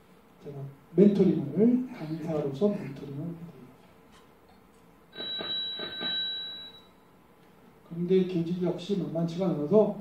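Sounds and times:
bicycle bell ringing: 0:05.2 - 0:06.8.

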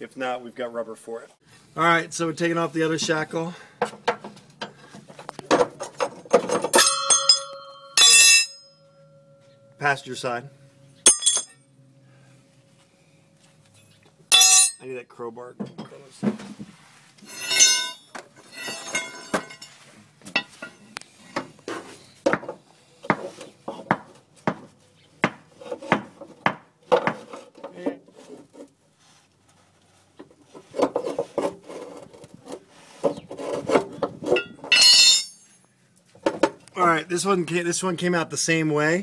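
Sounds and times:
crowbar knocking and scraping metal: 0:03.8 - 0:10.0, 0:11.1 - 0:11.6, 0:14.3 - 0:14.9, 0:17.2 - 0:28.7, 0:30.5 - 0:35.5
ringing metal clang: 0:06.6 - 0:11.9, 0:14.3 - 0:14.9, 0:17.3 - 0:19.7, 0:34.4 - 0:35.6.

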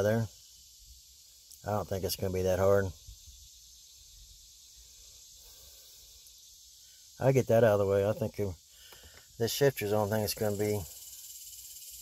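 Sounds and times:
faint high-pitched hiss: 0:00.0 - 0:12.0.

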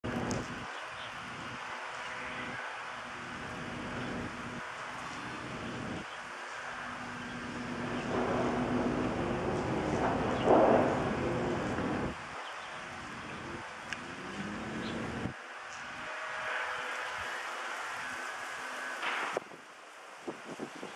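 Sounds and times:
road traffic rumbling: 0:00.0 - 0:19.4
vehicle passing: 0:06.7 - 0:12.2, 0:13.1 - 0:18.6.

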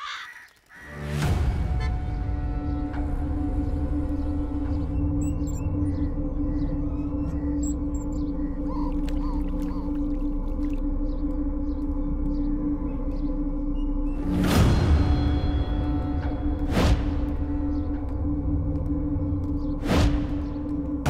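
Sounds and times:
ambient film score drone: 0:00.1 - 0:21.0
high bird chirps: 0:04.8 - 0:10.0.

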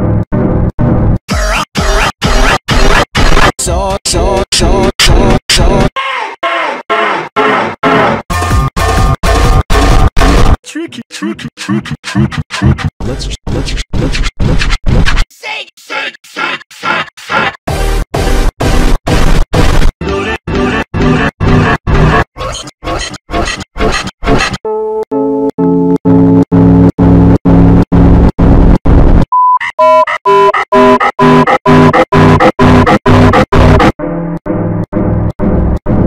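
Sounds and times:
distorted stuttering noise bursts: 0:01.4 - 0:03.6, 0:26.3 - 0:29.3, 0:30.7 - 0:34.0.

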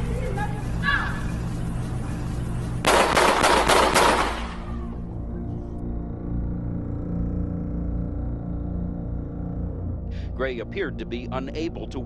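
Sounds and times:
gunshots: 0:02.8 - 0:04.7.

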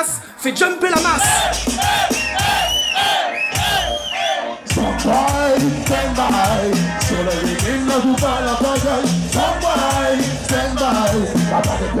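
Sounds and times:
crowd: 0:00.0 - 0:12.0
dancehall music with heavy bass: 0:00.6 - 0:12.0.

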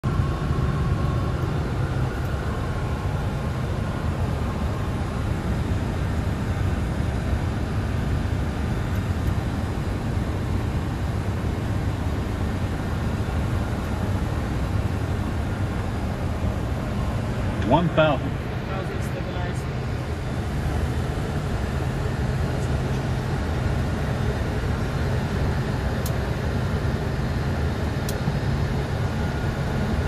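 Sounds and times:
aircraft engine and airflow rumble: 0:00.0 - 0:30.0.

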